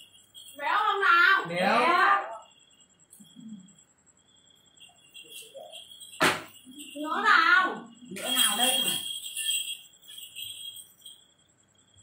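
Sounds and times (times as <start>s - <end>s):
thin high-pitched tone: 0.0s - 11.2s.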